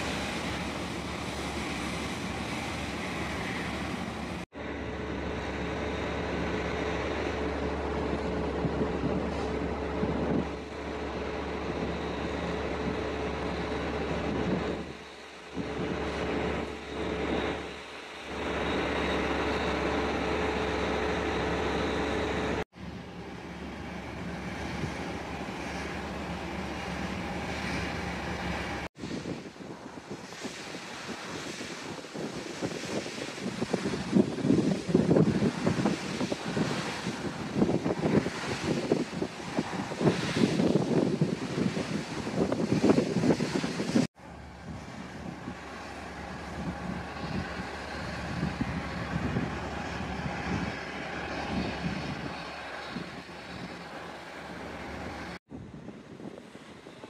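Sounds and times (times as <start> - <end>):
flare burner roaring: 0.0 - 57.0.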